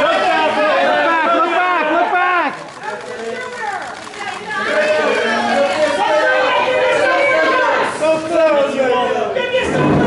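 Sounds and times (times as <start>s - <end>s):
indistinct chatter: 0.0s - 10.0s.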